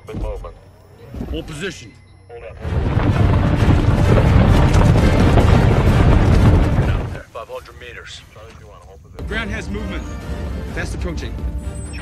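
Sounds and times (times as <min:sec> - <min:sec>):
herd galloping rumble: 0:02.6 - 0:07.3
orchestral film score: 0:09.2 - 0:12.0.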